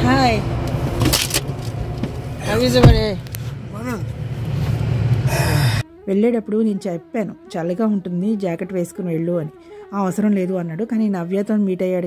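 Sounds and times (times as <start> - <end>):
car idling hum: 0.0 - 5.8
woman's voice: 6.0 - 12.0.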